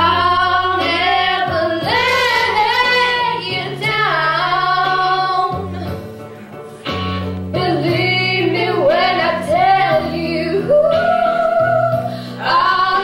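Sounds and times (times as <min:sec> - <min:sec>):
girls singing a duet: 0:00.0 - 0:06.0, 0:07.5 - 0:13.0.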